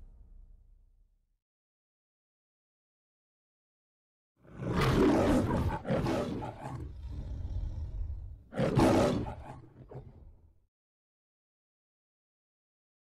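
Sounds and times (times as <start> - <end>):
lion roaring: 4.4 - 10.4
low lion growl: 4.4 - 10.4.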